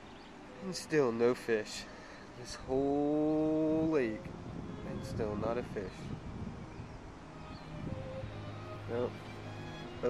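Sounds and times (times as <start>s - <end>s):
wind on microphone: 2.5s - 9.2s.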